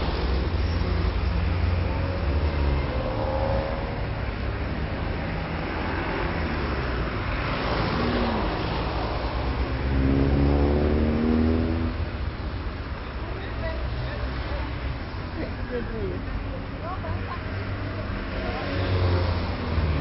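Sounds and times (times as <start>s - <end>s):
low traffic rumble: 0.0s - 20.0s
vehicles passing: 0.0s - 20.0s.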